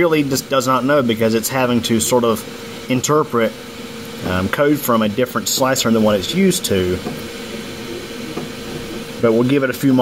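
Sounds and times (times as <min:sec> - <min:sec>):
cooling fans whirring: 0:00.0 - 0:10.0
faint constant hum: 0:00.0 - 0:10.0.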